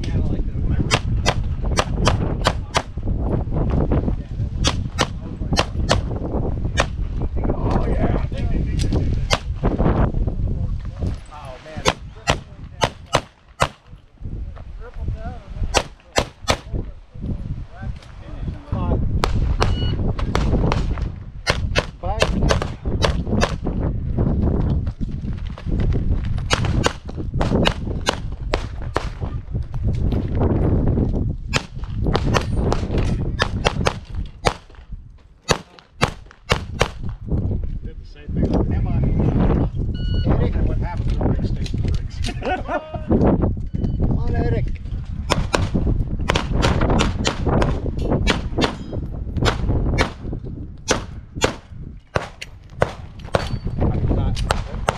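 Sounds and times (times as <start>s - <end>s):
pistol firing: 11.8s - 13.9s, 15.8s - 16.7s, 33.4s - 34.8s, 35.5s - 37.0s, 46.3s - 48.8s, 50.9s - 53.5s.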